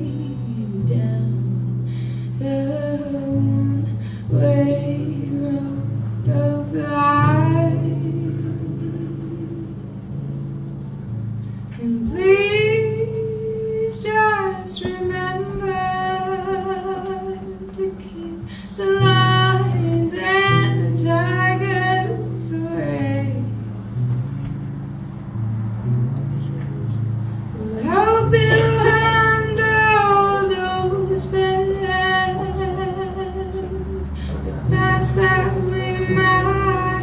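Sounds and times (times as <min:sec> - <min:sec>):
woman singing: 0:00.0 - 0:09.8, 0:11.8 - 0:23.6, 0:27.6 - 0:37.0
acoustic guitar chords: 0:00.0 - 0:37.0.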